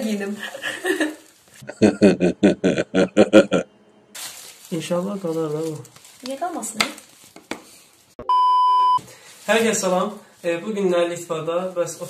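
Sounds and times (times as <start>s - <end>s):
steady electronic beep: 8.2s - 9.0s.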